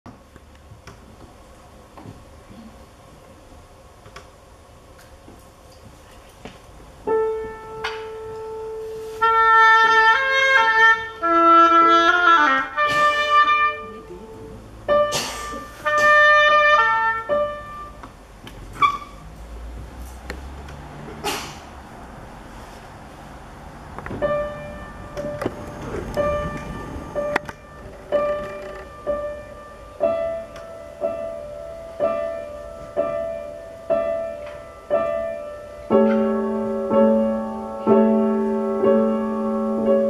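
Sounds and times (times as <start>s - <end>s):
piano chord: 7.0s - 10.0s, 24.1s - 40.0s
reedy oboe notes: 7.3s - 18.0s.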